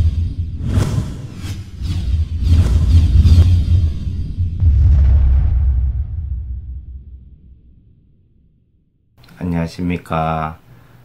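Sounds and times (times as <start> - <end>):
whooshing swells: 0.6 - 8.5
deep bass drone: 1.6 - 9.1.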